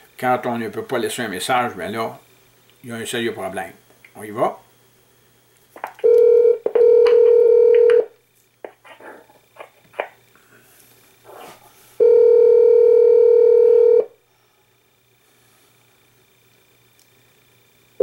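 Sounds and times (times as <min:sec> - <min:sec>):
telephone ringback tone: 0:06.0 - 0:08.1, 0:12.0 - 0:14.1.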